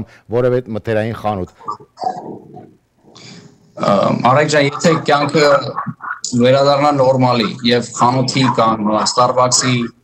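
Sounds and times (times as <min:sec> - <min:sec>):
low wordless vocal sounds: 0:01.6 - 0:10.0
man speaking: 0:03.2 - 0:10.0.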